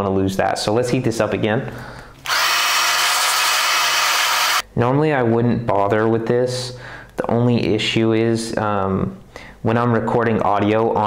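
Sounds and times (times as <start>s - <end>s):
hair dryer running: 2.2s - 4.6s.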